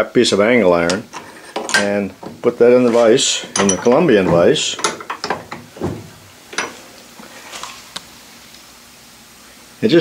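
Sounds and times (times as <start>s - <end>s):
light metal clicks and knocks: 0.9s - 6.8s.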